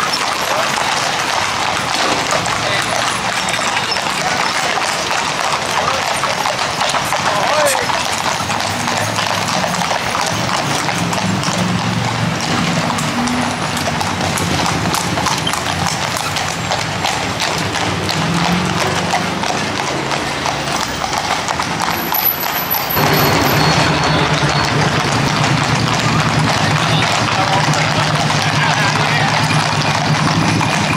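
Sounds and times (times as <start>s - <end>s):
hooves clip-clopping on asphalt: 0.0s - 30.9s.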